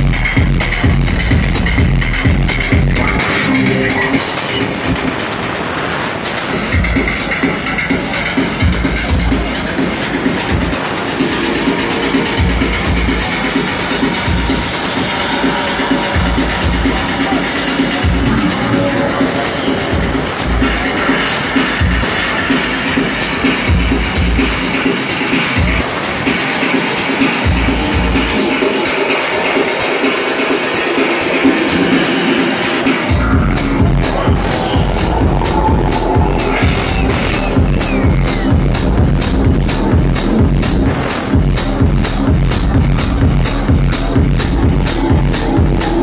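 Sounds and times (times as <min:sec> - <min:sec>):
loud electronic dance music: 0:00.0 - 0:46.0
techno over club sound system: 0:00.0 - 0:46.0
bass hit: 0:33.1 - 0:46.0.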